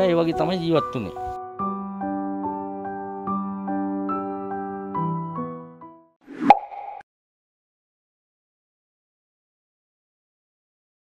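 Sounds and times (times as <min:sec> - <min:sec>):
soft keyboard music: 0:00.0 - 0:06.0
rising whoosh: 0:06.3 - 0:07.0.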